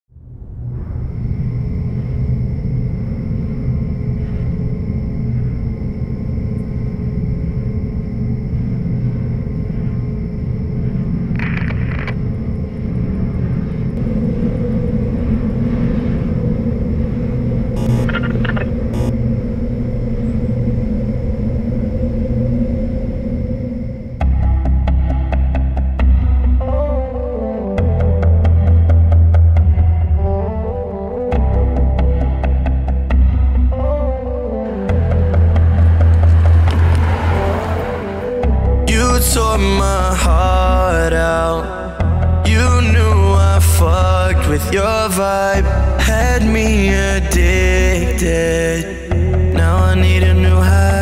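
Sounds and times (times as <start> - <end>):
steady low rumble: 0.1 - 51.0.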